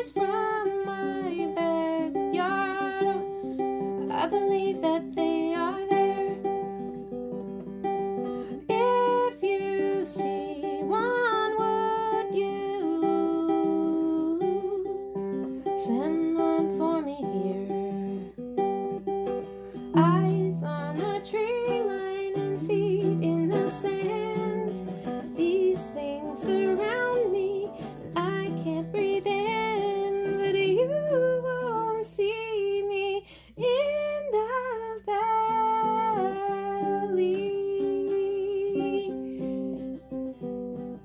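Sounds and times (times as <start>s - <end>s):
person singing: 0.0s - 6.8s, 8.4s - 18.4s, 19.6s - 40.3s
acoustic guitar fingerpicked: 0.0s - 41.0s.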